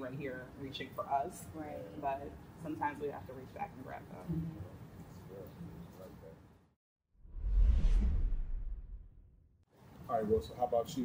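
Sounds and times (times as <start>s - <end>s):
whoosh transition effect: 7.2s - 9.4s
deep low boom: 7.2s - 9.5s.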